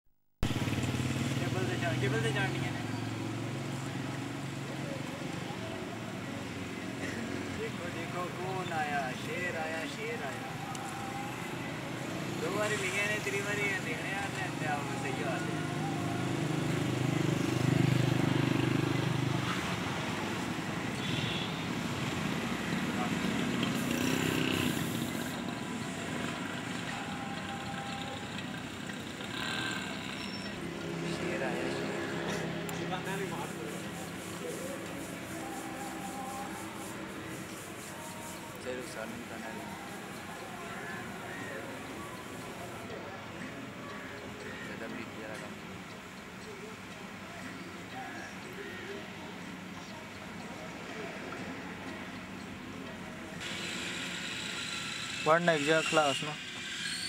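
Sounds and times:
outdoor background noise: 0.4 - 57.0
indistinct voices: 1.4 - 21.0, 21.7 - 57.0.

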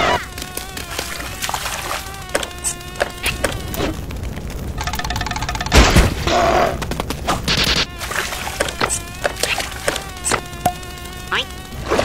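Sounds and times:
buzzing nasal drone: 0.0 - 4.2, 7.5 - 12.0.

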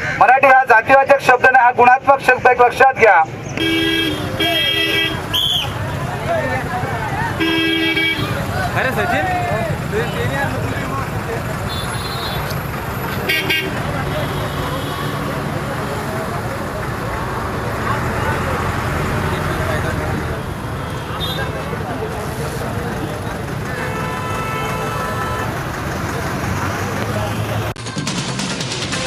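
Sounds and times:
low rumble of traffic: 0.0 - 27.8
outdoor road noise: 0.0 - 29.0
vehicle horn toots: 3.6 - 5.8, 7.4 - 8.5, 11.7 - 12.5, 13.2 - 15.2, 23.7 - 25.6.

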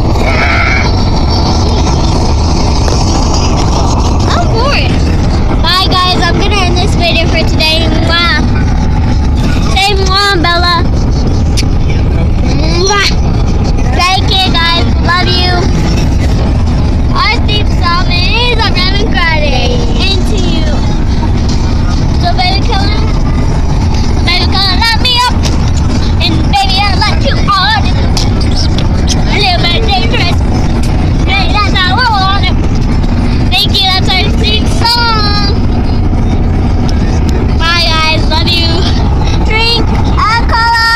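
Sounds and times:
car interior rumble: 0.0 - 40.9.

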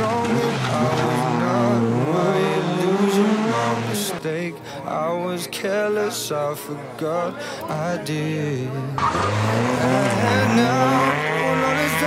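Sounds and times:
rally car engine pulling hard: 0.0 - 4.2, 9.0 - 12.0
song with male vocals: 0.0 - 12.0.

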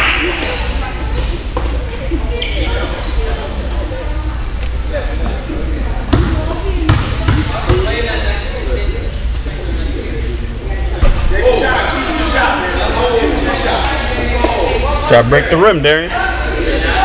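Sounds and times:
basketball bouncing on gym floor: 6.1 - 7.9.

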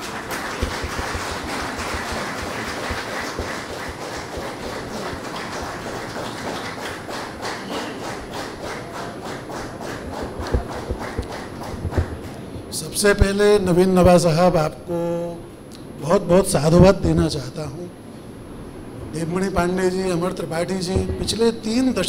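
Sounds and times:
audience applauding: 0.0 - 12.5.

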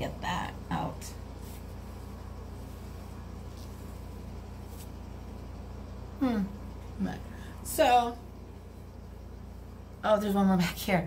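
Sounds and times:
room tone hum: 0.0 - 11.0
faint paper rustles: 1.3 - 5.4.

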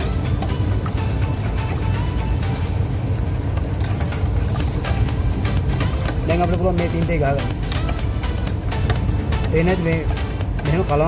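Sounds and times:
low machine rumble: 0.0 - 11.0.

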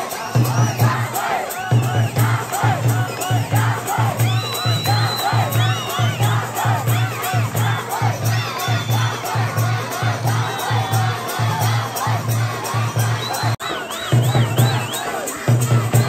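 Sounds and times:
crowd shouting and cheering: 0.0 - 16.0
fast low beat: 0.2 - 16.0.

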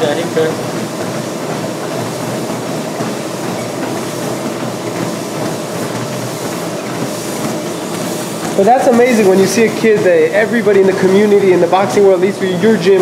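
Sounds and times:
person walking on treadmill: 0.0 - 13.0
treadmill belt and motor: 0.0 - 13.0.

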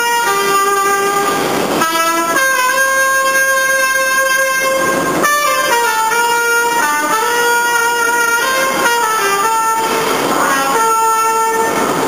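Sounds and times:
trumpet playing held notes: 0.0 - 12.0.

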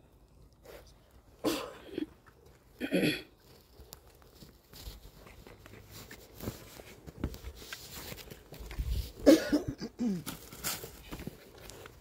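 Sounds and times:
person coughing: 1.4 - 2.2, 2.8 - 3.4, 9.2 - 10.3.

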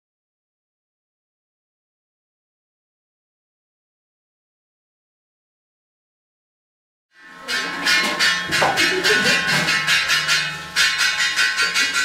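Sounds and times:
rapid ringing metallic strikes: 7.2 - 12.0.

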